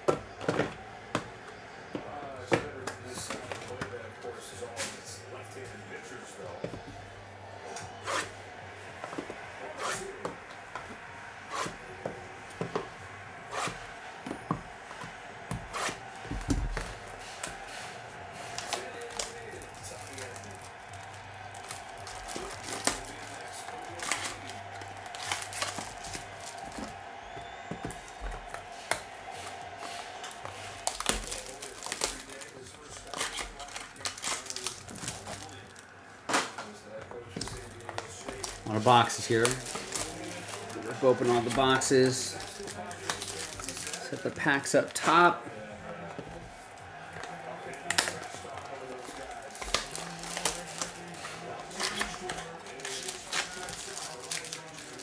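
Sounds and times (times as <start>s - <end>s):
cardboard tearing: 8.0s - 8.3s, 15.6s - 44.4s, 47.3s - 55.0s
plastic wrap crinkling: 11.0s - 45.3s, 46.0s - 55.0s.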